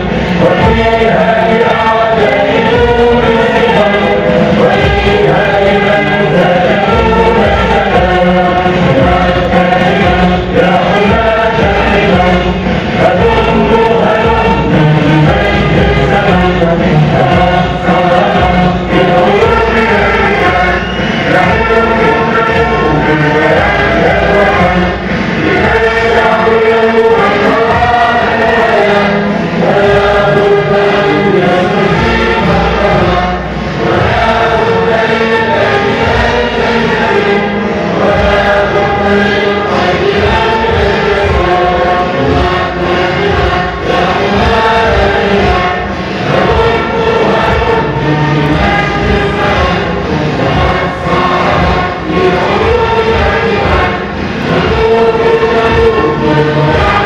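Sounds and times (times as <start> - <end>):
crowd singing in unison: 0.0 - 57.0.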